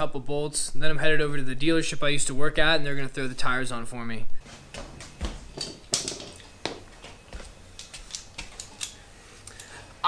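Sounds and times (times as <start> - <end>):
hand tools clinking: 5.6 - 9.0.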